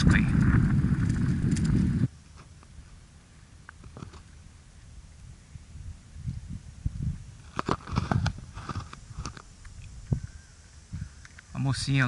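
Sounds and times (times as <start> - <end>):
wind rumble on microphone: 0.0 - 2.2, 3.8 - 12.0.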